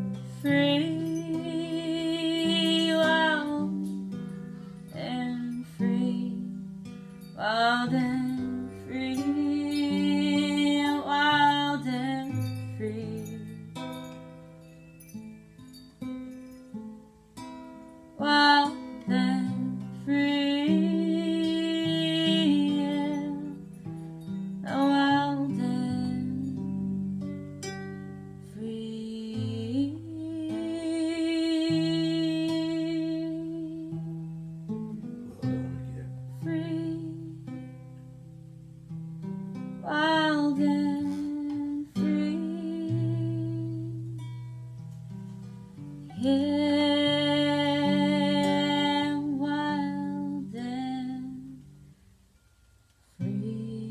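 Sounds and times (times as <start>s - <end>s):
woman singing wordlessly: 0.0s - 6.6s, 7.4s - 13.6s, 18.2s - 23.8s, 24.6s - 26.9s, 28.4s - 34.1s, 34.9s - 37.6s, 39.8s - 44.4s, 46.1s - 51.8s, 53.1s - 53.9s
acoustic guitar picking: 0.0s - 53.9s.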